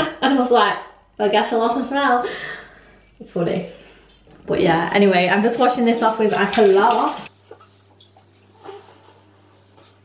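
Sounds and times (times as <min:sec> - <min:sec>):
damp cloth rubbing against face: 0:07.0 - 0:10.0.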